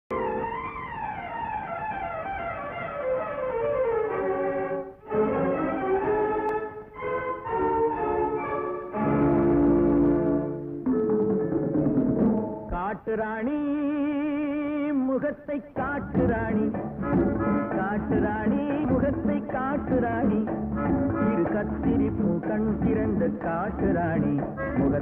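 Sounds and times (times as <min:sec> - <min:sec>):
orchestral film music: 0:03.0 - 0:12.3.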